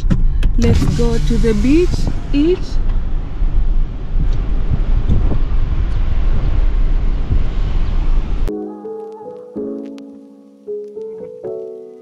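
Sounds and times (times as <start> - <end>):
car road noise: 0.0 - 8.5
wind rushing over microphone: 0.0 - 8.5
soft piano music: 8.5 - 12.0.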